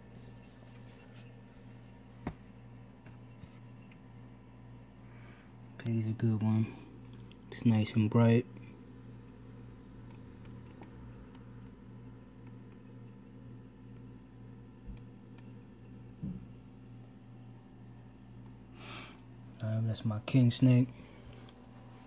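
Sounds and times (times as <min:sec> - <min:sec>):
low room hum: 0:00.0 - 0:22.0.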